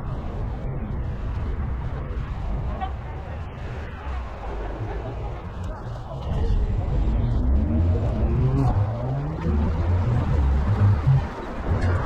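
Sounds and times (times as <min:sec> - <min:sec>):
low traffic rumble: 0:00.0 - 0:12.0
car accelerating away: 0:06.4 - 0:12.0.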